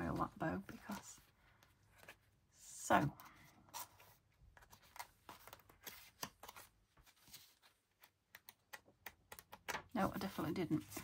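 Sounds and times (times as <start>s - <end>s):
paper pages rustling: 0.0s - 2.4s, 3.2s - 11.0s.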